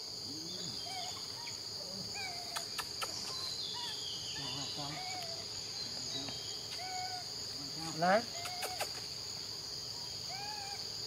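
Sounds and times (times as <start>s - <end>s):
insects buzzing: 0.0s - 11.0s
short chirping calls: 0.5s - 7.2s.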